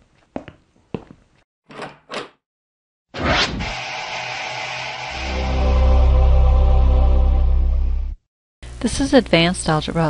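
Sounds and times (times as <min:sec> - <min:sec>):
swishing swells: 0:03.2 - 0:07.4.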